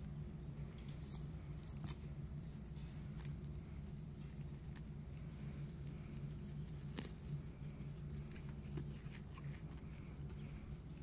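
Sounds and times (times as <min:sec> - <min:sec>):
steady low hum: 0:00.0 - 0:11.0
goat tearing and chewing grass: 0:00.8 - 0:11.0.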